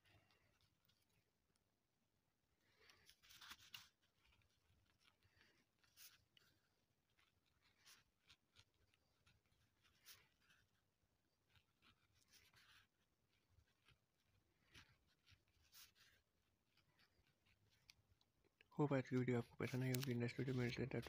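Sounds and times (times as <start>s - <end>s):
pen scratching on paper: 2.9s - 18.2s.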